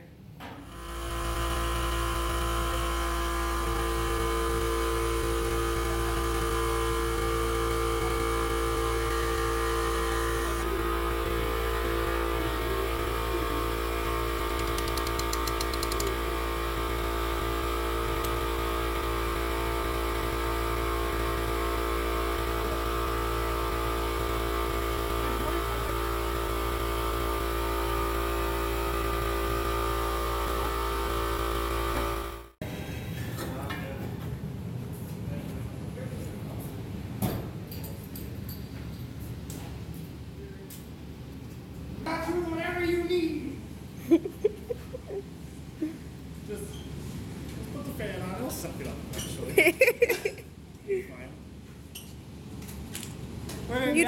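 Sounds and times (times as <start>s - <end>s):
electric hum of machinery: 0.0s - 54.0s.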